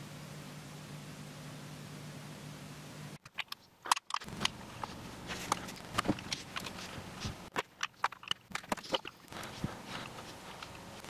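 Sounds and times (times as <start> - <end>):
plastic bricks clicking: 7.5 - 9.4.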